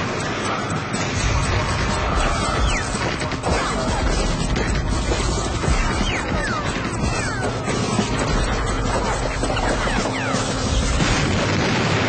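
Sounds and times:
gliding electronic tones: 0:00.0 - 0:11.3.

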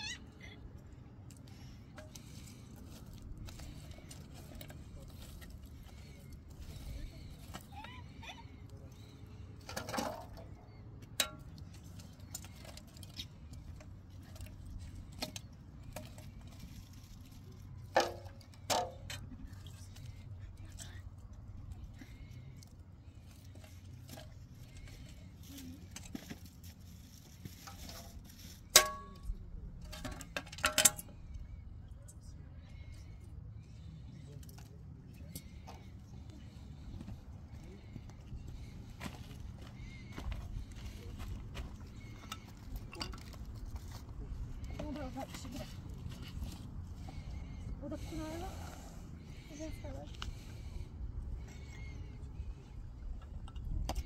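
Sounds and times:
low steady background noise: 0:00.0 - 0:54.0
fire shovel and tongs scraping: 0:23.6 - 0:31.1.

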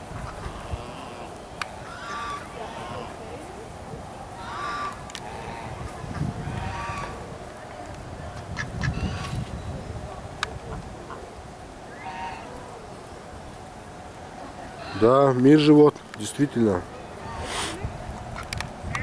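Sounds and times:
waterfowl calling: 0:00.1 - 0:03.4, 0:04.4 - 0:07.2, 0:11.9 - 0:12.8, 0:17.0 - 0:17.8.

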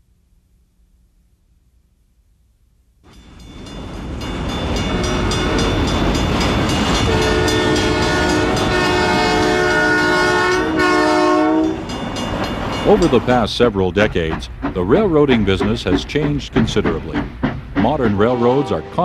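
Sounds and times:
train rumble and rail clatter: 0:03.1 - 0:19.0
train horn chord: 0:07.0 - 0:12.0, 0:18.2 - 0:19.0.

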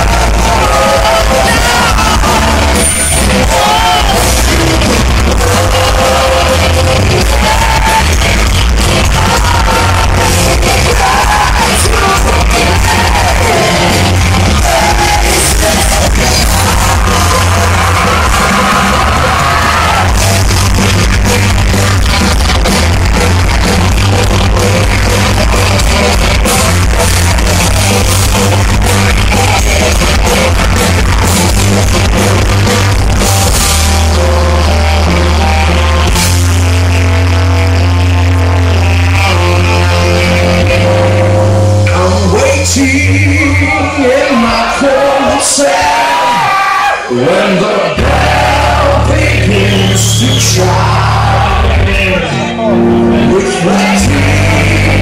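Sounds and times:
drum kit: 0:00.0 - 0:43.7, 0:48.0 - 0:55.0
bass guitar: 0:00.0 - 0:55.0
distorted electric guitars: 0:00.0 - 0:55.0.

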